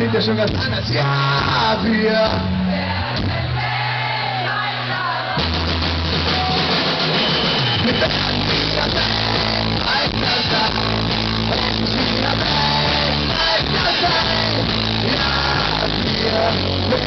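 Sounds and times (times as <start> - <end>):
bass guitar: 0.0 - 17.0
drum kit: 4.6 - 17.0
electric guitar: 5.3 - 17.0.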